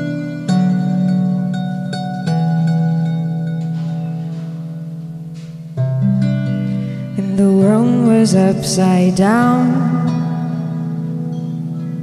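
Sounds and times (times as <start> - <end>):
plucked zither chords: 0.0 - 12.0.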